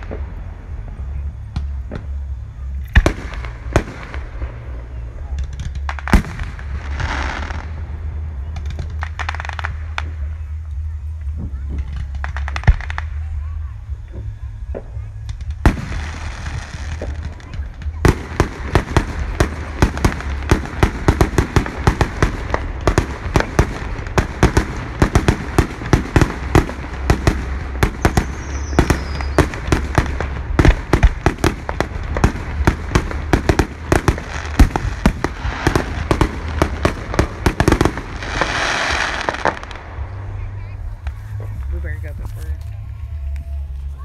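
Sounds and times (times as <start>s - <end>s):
hissing rush: 15.7s - 42.0s
falling firework whistle: 27.8s - 29.8s.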